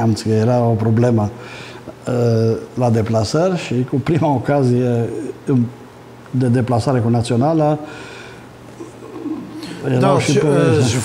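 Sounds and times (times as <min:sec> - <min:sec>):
man talking: 0:00.0 - 0:01.4, 0:02.0 - 0:07.9, 0:09.6 - 0:11.0.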